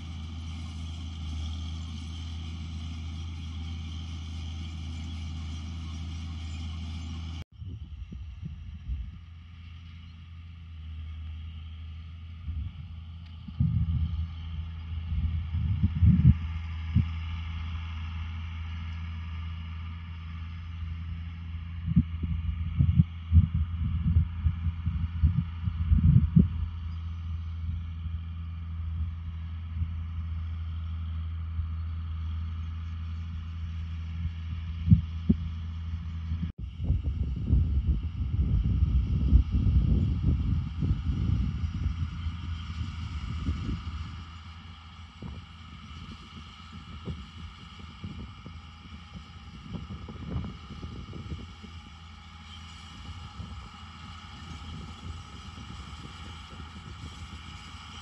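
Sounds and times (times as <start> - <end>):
steady machine whine: 0.0 - 58.0
tractor diesel engine running: 0.0 - 58.0
wind buffeting microphone: 7.6 - 9.3, 12.4 - 17.2, 21.8 - 26.9, 34.1 - 52.0, 52.6 - 58.0.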